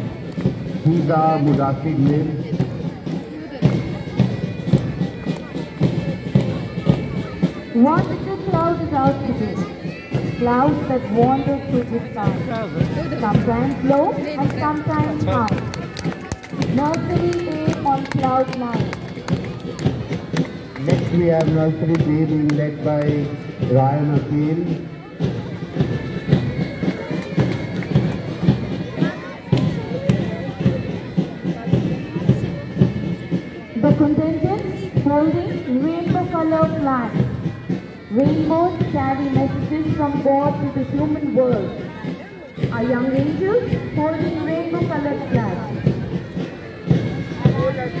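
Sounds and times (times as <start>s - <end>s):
crowd chatter: 0.0s - 48.0s
drums beating: 0.0s - 48.0s
marching band playing: 0.0s - 48.0s.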